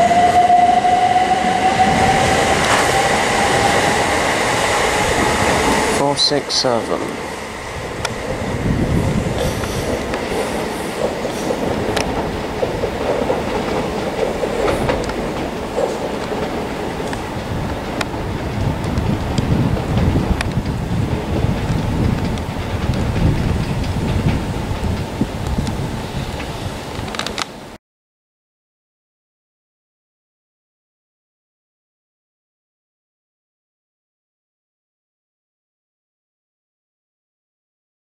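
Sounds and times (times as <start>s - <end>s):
train wheels rumbling on rail: 0.0s - 27.8s
sharp clicks of train wheels: 2.5s - 27.6s.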